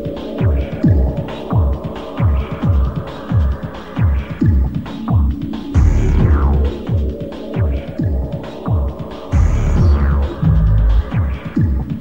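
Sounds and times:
electronic dance music: 5.8 - 7.2, 9.4 - 11.6
falling synth sweep: 5.8 - 7.2, 9.4 - 11.6.

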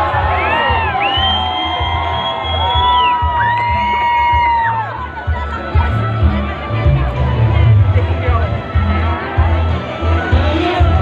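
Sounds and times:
crowd noise: 0.0 - 11.0
live band over loudspeakers: 0.0 - 11.0
pulsing bass line: 0.0 - 11.0.

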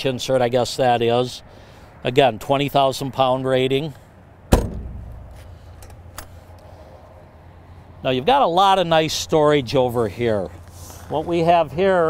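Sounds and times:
storage compartment door slamming: 4.5 - 5.6.

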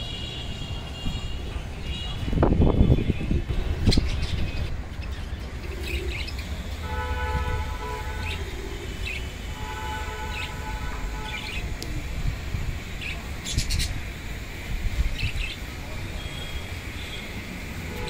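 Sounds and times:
horn blasts: 6.8 - 8.4, 9.4 - 11.6.

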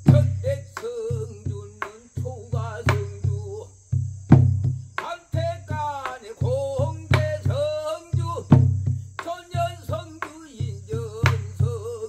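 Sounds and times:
low drum thuds: 0.0 - 12.0.

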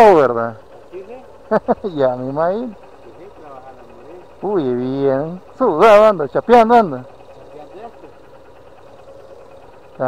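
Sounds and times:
small motorcycle engine idling: 0.0 - 10.0.

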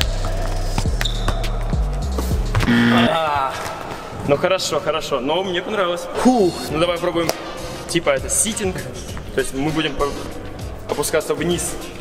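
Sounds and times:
background music with bass line: 0.0 - 3.2.

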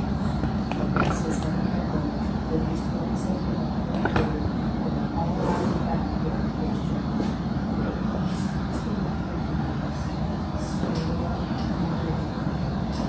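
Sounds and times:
people chattering: 0.0 - 13.0.

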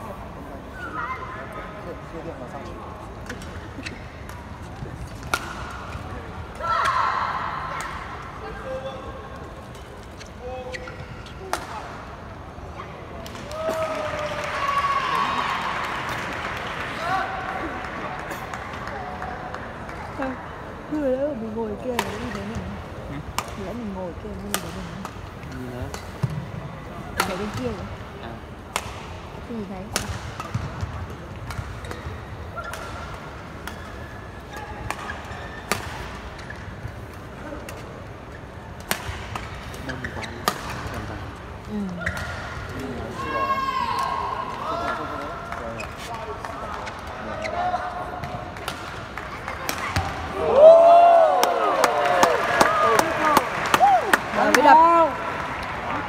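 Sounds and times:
crowd chatter: 0.0 - 56.0
rackets striking shuttlecock: 28.7 - 29.3.

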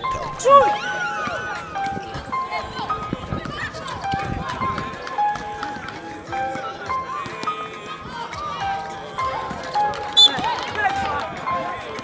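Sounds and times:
background music: 0.0 - 3.3
voices of players and onlookers: 0.0 - 12.0
feet running: 0.1 - 12.0.

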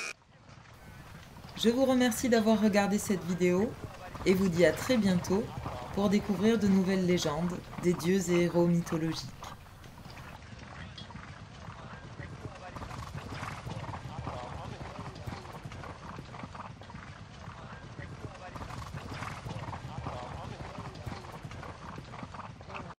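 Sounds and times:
murmur of voices: 0.8 - 10.4
horse hooves clip-clopping: 0.8 - 22.9.

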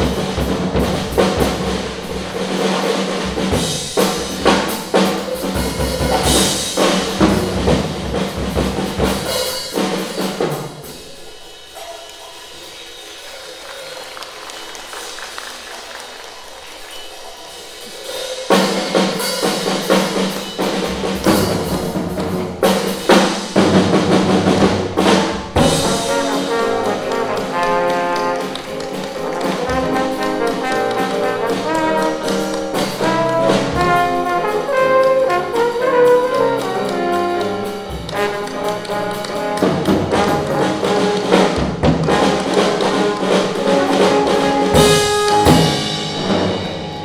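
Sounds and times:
trombone: 0.0 - 10.9, 18.1 - 47.0
piano: 0.0 - 47.0
cymbal playing: 25.1 - 47.0.

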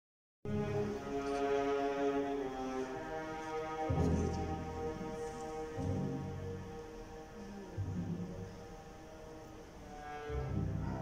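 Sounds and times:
orchestral ballet music: 0.5 - 11.0.

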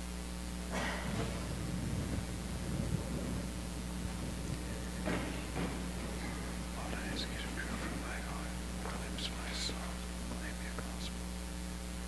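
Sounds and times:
low electrical hum: 0.0 - 12.0
man whispering: 1.0 - 11.3.

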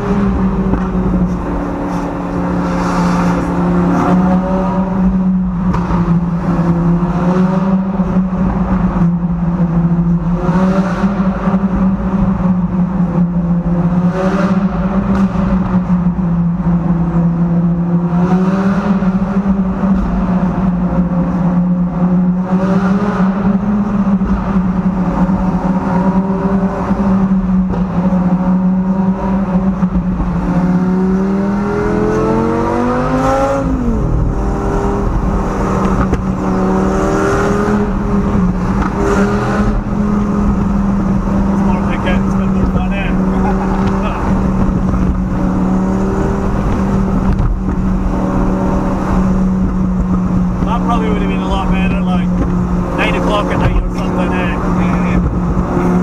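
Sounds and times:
car engine and exhaust: 0.0 - 56.0.

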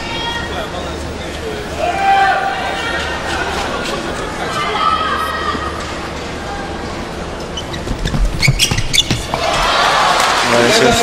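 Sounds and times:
crowd babble: 0.0 - 8.1, 8.8 - 11.0.

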